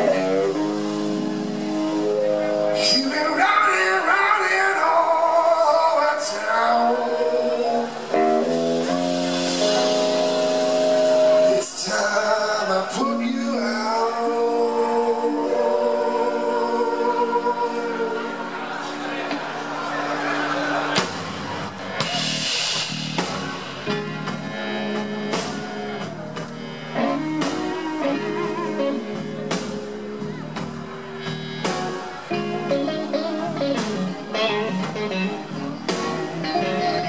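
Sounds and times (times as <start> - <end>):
person singing: 0.0 - 19.4, 27.0 - 30.5, 31.9 - 37.0
blues-rock band playing: 0.0 - 37.0.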